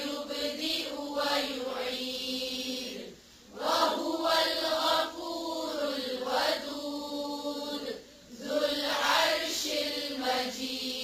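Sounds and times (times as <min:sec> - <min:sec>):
person chanting a recitation: 0:00.0 - 0:11.0.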